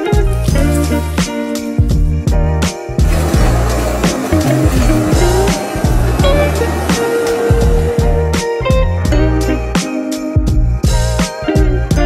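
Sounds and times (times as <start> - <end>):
background music with bass and guitar: 0.0 - 12.0
blowtorch hissing: 3.0 - 8.5.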